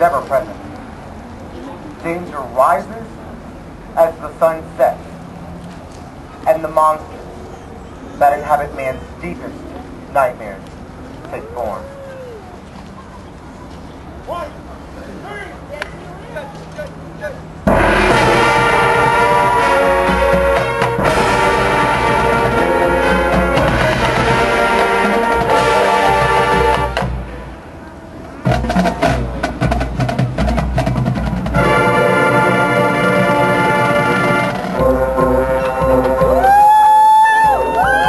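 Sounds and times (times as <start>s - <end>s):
brass chords: 17.6s - 27.7s, 28.4s - 36.6s
drums: 17.7s - 27.5s, 28.4s - 32.3s, 33.7s - 38.0s.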